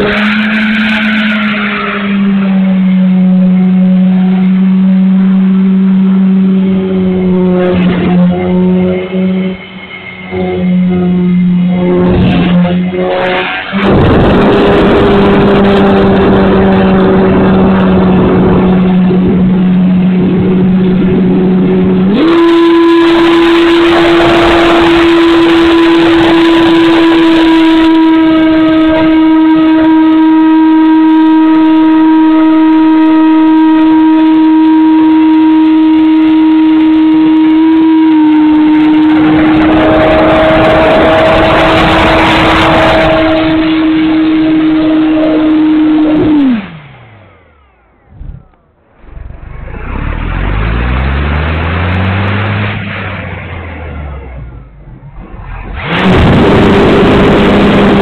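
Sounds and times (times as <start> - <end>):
electric motor and propeller whine: 2.2 - 58.0
wind noise on microphone: 11.6 - 32.8, 54.9 - 58.0.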